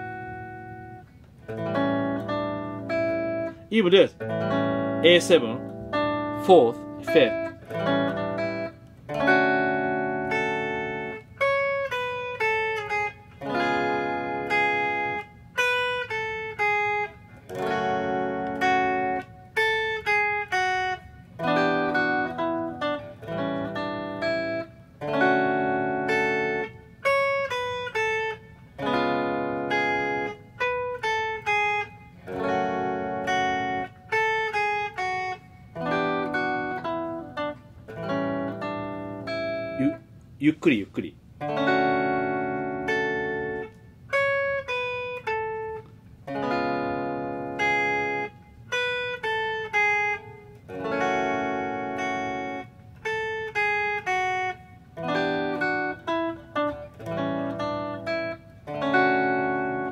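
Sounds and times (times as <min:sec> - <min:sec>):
electric guitar chords and melody: 0:00.0 - 0:59.9.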